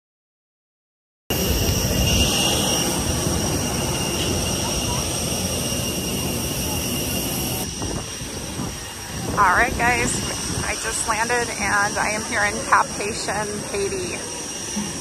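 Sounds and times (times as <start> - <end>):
high steady turbine whine: 1.3 - 15.0
jet turbine rushing: 1.3 - 15.0.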